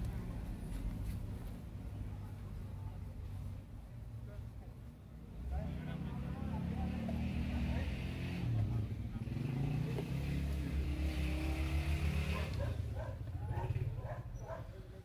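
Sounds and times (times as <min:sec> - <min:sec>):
people talking in background: 0:00.0 - 0:15.0.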